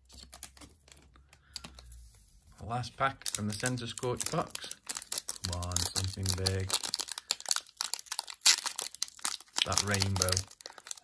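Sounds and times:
foil wrapper crinkling: 3.0 - 11.0.

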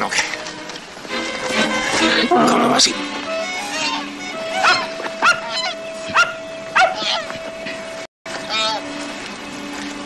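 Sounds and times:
background music note: 0.0 - 10.0
animal yelping: 3.5 - 7.3, 8.5 - 8.8.

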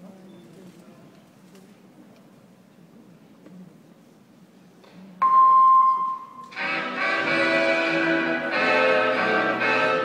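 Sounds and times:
instrumental music over loudspeakers: 5.3 - 10.0.

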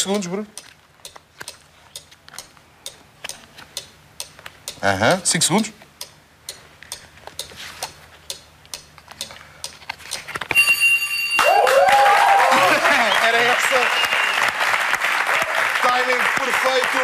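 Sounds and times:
countdown ticking: 0.0 - 7.5
audience cheering and applauding: 11.4 - 17.0.

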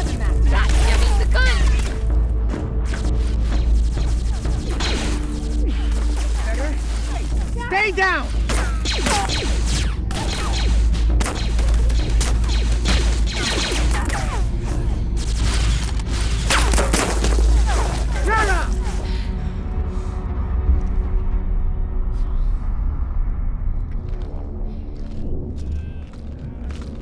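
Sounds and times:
blaster shots zapping: 3.5 - 5.5, 8.5 - 14.4
deep rumble: 19.2 - 27.0.

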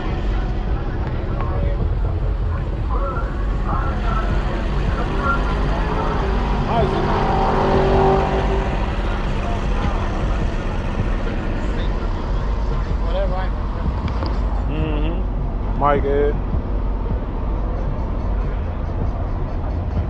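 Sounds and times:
people talking: 0.0 - 16.5
car engine idling: 0.0 - 20.0.

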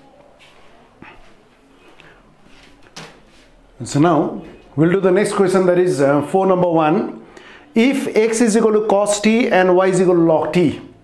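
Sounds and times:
man's voice: 3.8 - 7.2, 7.8 - 11.0.

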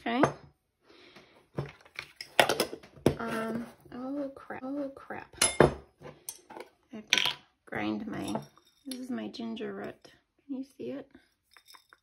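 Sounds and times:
metal spoons clinking on ceramic bowl: 5.4 - 6.5, 8.1 - 9.2, 11.5 - 12.0.

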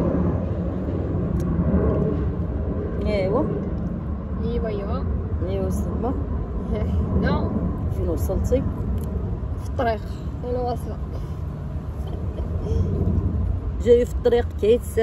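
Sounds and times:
low outdoor rumble: 0.0 - 15.0.

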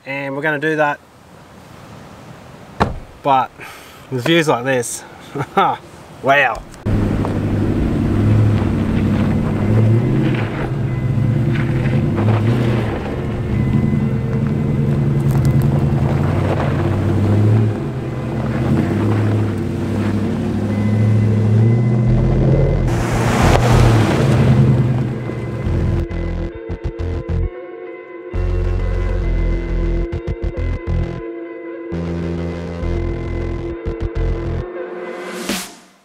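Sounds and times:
vehicle engine running: 6.9 - 27.5, 28.4 - 31.2, 32.0 - 34.7
background music low notes: 6.9 - 36.0
rush of noise: 22.0 - 27.3.

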